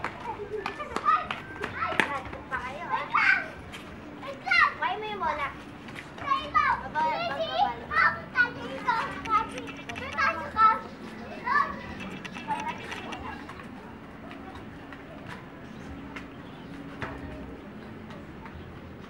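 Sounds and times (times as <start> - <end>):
children calling out and chattering: 0.0 - 19.0.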